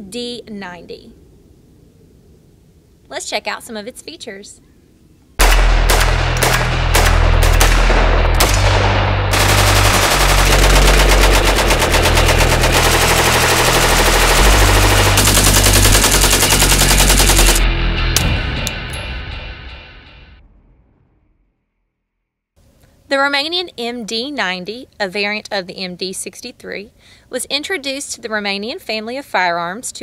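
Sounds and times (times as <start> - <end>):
rifle gunfire: 5.4 - 17.6
music with heavy bass: 5.4 - 20.3.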